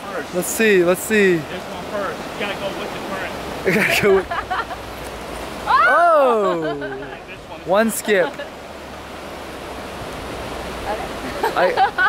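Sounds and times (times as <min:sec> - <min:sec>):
river water rushing: 0:00.0 - 0:12.0.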